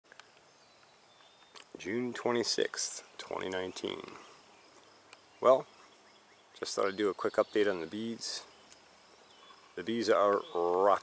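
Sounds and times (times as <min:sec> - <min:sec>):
man talking: 0:01.8 - 0:04.3, 0:05.4 - 0:05.7, 0:06.6 - 0:08.5, 0:09.8 - 0:11.0.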